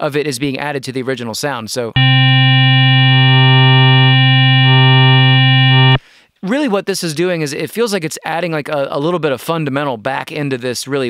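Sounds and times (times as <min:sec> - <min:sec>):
buzzy sustained synthesizer note: 0:02.0 - 0:06.0.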